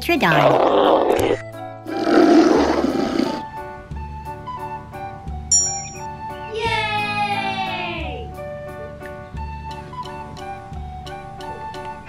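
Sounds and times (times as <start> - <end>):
light background music: 0.0 - 12.0
dinosaur roar: 0.3 - 3.5.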